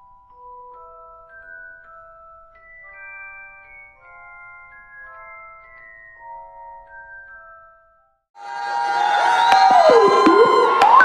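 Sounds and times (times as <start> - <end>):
held musical tones: 8.4 - 11.0
audience cheering and whooping: 8.6 - 11.0
sharp percussive hits: 9.5 - 11.0.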